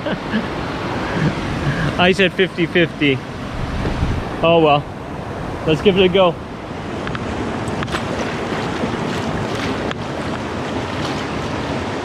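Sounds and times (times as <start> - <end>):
person laughing: 0.0 - 2.1
whitewater rushing: 0.0 - 12.0.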